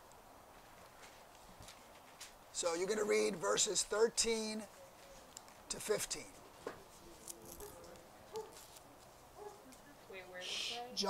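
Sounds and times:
soft murmured voices: 4.6s - 11.0s
paper pages being turned: 7.0s - 9.1s.

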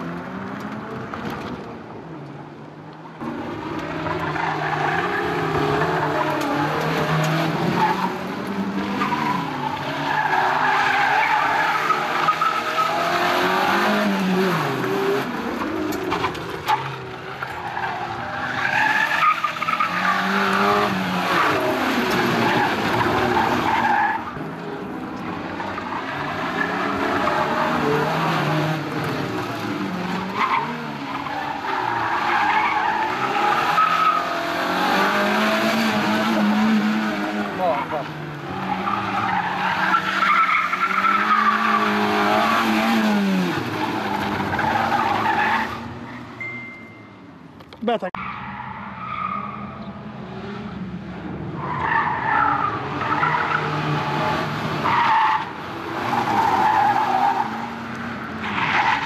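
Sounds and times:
tyres squealing and skidding: 3.0s - 46.7s, 48.0s - 50.1s, 51.5s - 59.0s
car engine revving: 3.2s - 46.4s.

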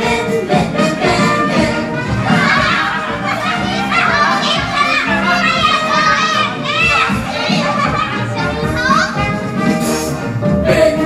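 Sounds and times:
instrumental backing music: 0.0s - 11.0s
child voices calling and chattering: 2.0s - 9.6s.

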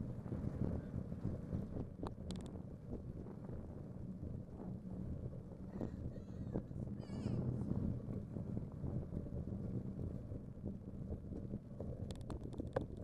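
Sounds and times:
wind buffeting microphone: 0.0s - 13.0s
bicycle rolling on pavement: 7.6s - 13.0s.

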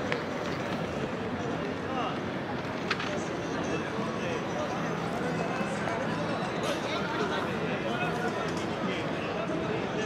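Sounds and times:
steady background noise: 0.0s - 10.0s
unclear voices of passers-by: 0.0s - 10.0s.

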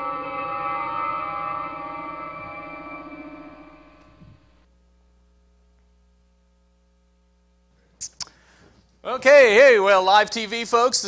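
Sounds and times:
shimmering chime-like warbling chord: 0.0s - 4.6s.

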